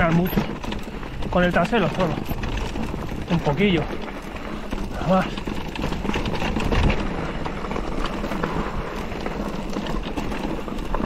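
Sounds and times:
bike rattling: 0:00.0 - 0:11.0
bike tyres crunching over gravel: 0:00.0 - 0:11.0.

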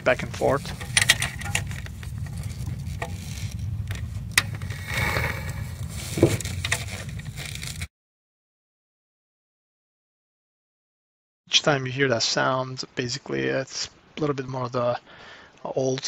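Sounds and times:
steady low rumble: 0:00.0 - 0:07.9.

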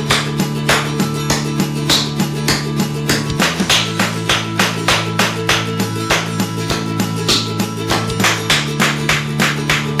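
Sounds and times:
background music with held chords: 0:00.0 - 0:10.0.

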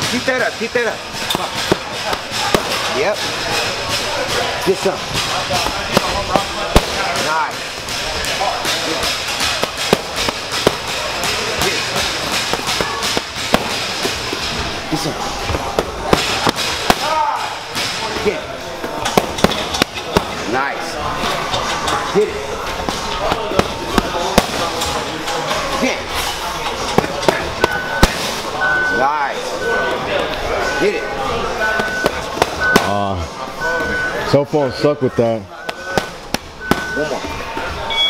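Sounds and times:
voices: 0:00.0 - 0:38.0
boxing gloves hitting mitts: 0:01.2 - 0:20.6, 0:22.7 - 0:25.2, 0:26.9 - 0:28.4.

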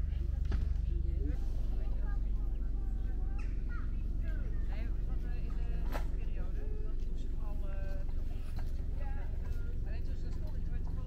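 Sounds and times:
people talking indistinctly: 0:00.0 - 0:11.0
steady low rumble: 0:00.0 - 0:11.0.

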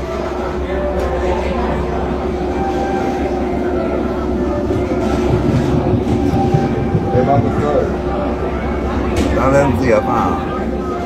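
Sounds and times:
voices: 0:00.0 - 0:11.0
vehicle rolling rumble: 0:00.7 - 0:11.0.

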